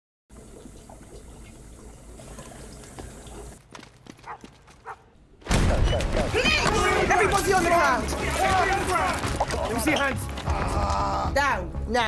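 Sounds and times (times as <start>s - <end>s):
people shouting: 6.3s - 11.4s.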